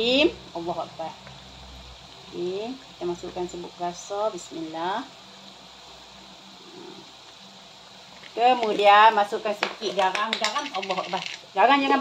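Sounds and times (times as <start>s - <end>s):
sauce hissing in a wok: 0.0s - 12.0s.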